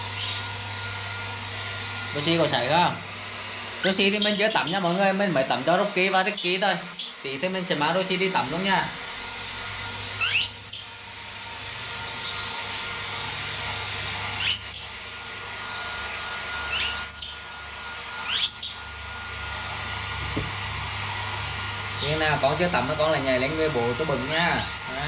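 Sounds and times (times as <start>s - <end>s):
hair dryer running: 0.0s - 25.0s
baby monkey squeaky calls: 3.8s - 4.9s, 6.2s - 7.2s, 10.2s - 10.9s, 14.4s - 14.8s, 16.7s - 17.4s, 18.2s - 19.0s.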